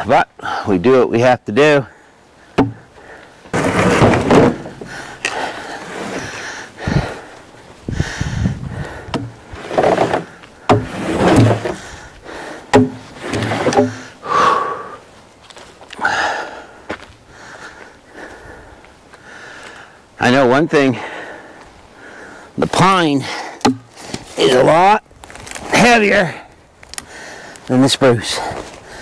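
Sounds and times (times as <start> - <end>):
dull thumps: 2.5 - 2.9, 3.5 - 5.3, 9.0 - 11.9, 12.7 - 14.1, 23.6 - 24.3
sharp knocks: 2.6 - 2.8, 12.7 - 13.1
wood scraping on truck bed: 3.5 - 7.0, 8.8 - 14.2.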